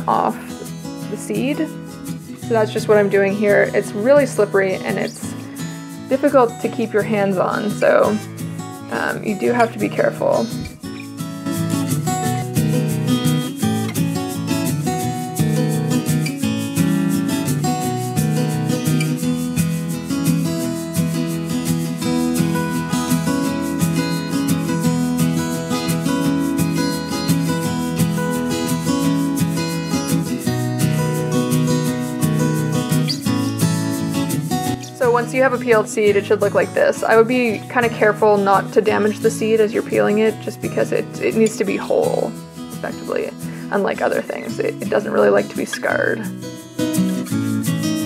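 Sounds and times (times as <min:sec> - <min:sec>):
plucked acoustic guitar: 0:00.0 - 0:48.0.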